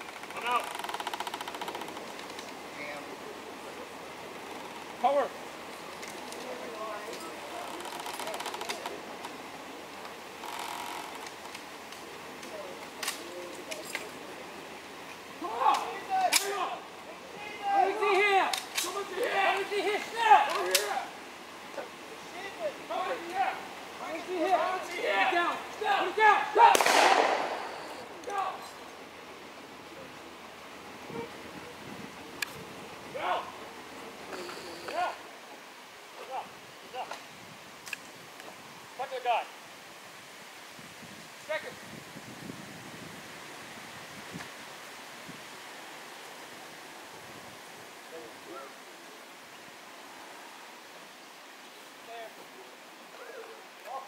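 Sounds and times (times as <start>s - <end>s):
voices calling out: 0.0s - 39.6s, 48.0s - 54.0s
blank rifle shots: 26.7s - 28.0s.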